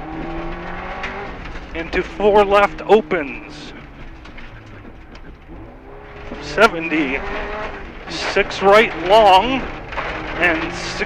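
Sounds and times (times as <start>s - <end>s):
gravel and road noise: 0.0s - 11.0s
rally car engine under load: 0.0s - 11.0s.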